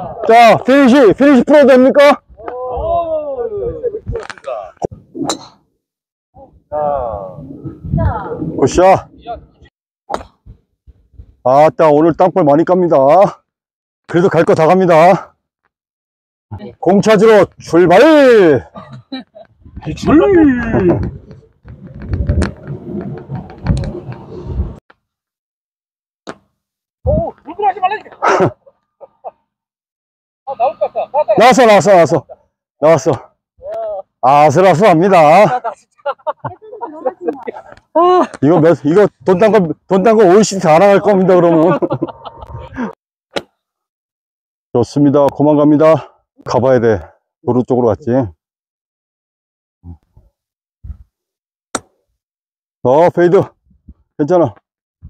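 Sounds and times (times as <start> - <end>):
golf iron striking ball: 5.2 - 5.6.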